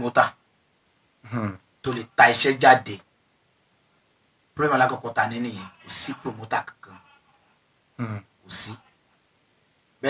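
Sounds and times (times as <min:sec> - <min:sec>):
man's voice sliding pitch: 0:04.7 - 0:07.1.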